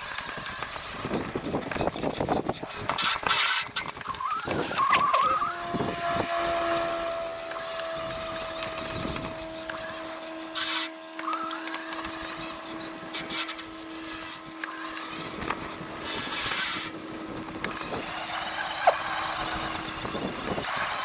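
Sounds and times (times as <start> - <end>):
electric motor whining: 0.0 - 21.0.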